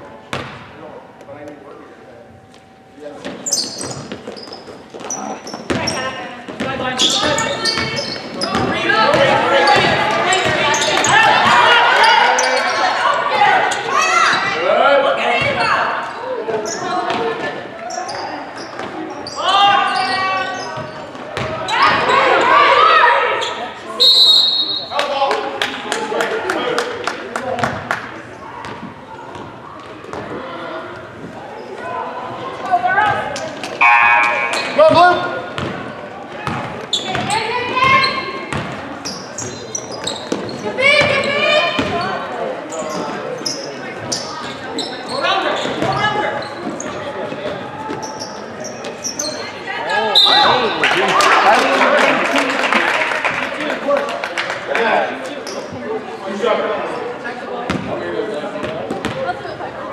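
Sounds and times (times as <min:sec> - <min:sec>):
people shouting in gym: 0:08.4 - 0:14.8, 0:21.5 - 0:23.4.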